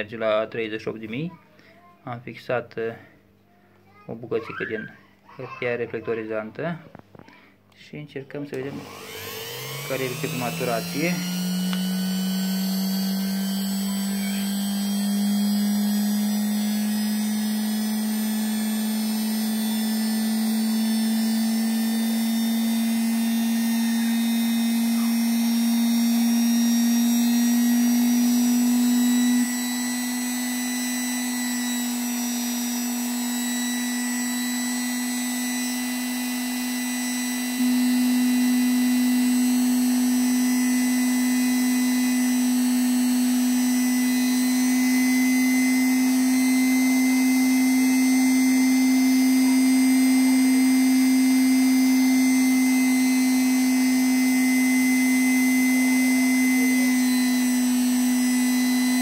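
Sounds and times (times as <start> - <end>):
rotary tool motor whine: 8.6 - 59.0.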